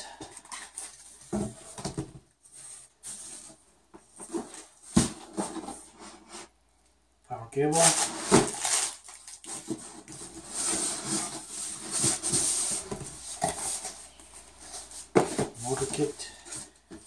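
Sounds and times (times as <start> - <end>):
cardboard rustling and scraping: 0.2 - 6.5, 7.7 - 17.0.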